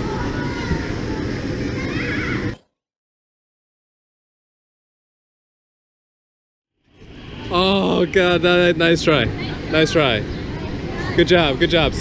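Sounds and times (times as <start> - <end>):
noisy hall ambience: 0.0 - 2.6.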